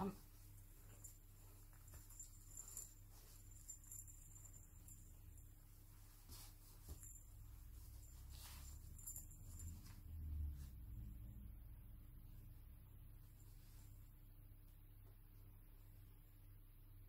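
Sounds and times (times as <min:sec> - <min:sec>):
clothes rustling: 0:00.0 - 0:11.1
low room hum: 0:00.0 - 0:17.0.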